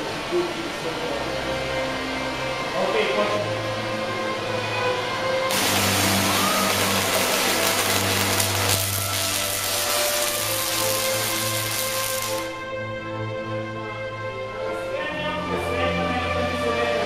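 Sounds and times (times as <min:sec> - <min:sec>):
tesla coil spark buzzing: 0:05.5 - 0:12.6.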